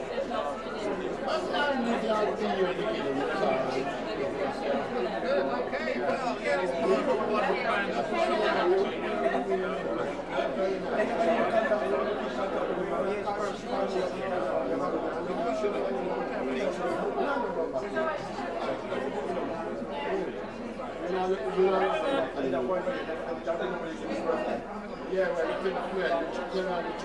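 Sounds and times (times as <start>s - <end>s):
crowd chatting: 0.0s - 27.0s.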